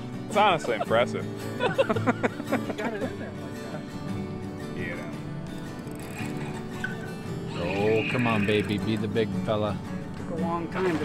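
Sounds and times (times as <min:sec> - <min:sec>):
background music with held notes: 0:00.0 - 0:11.0
man's voice: 0:00.3 - 0:01.2, 0:07.5 - 0:09.8.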